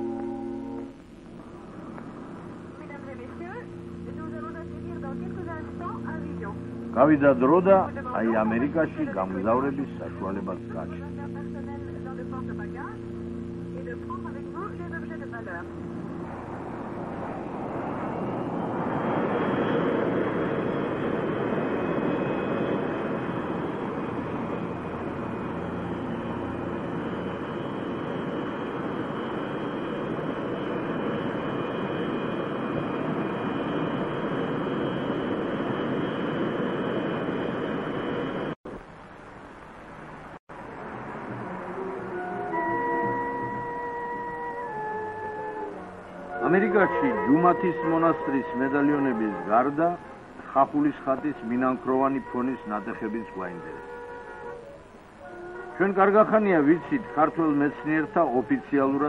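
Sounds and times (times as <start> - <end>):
jet engine roar: 0.0 - 50.4.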